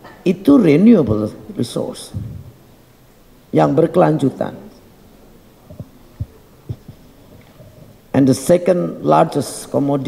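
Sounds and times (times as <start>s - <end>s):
soft low thumps: 2.1s - 2.6s, 5.6s - 8.1s.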